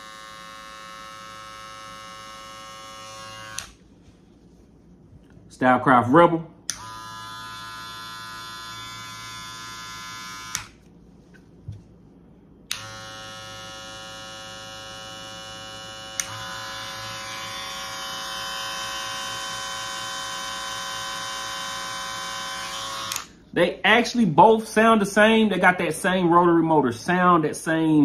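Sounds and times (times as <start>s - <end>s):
hair clipper buzzing: 0.0s - 3.8s, 6.7s - 10.9s, 12.7s - 23.4s
hair clipper switch click: 3.5s - 3.8s, 6.7s - 7.0s, 10.5s - 10.8s, 12.7s - 13.0s, 16.2s - 16.4s, 23.0s - 23.3s.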